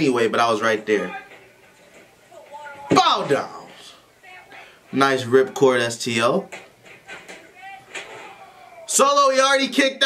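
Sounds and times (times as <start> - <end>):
distant voice: 7.0 - 9.0.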